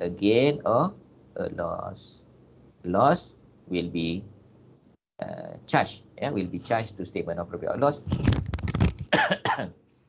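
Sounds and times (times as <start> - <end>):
man coughing: 9.0 - 9.8.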